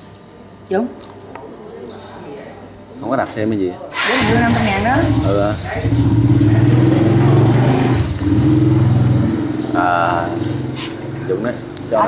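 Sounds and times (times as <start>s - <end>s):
motor engine running: 4.0s - 12.0s.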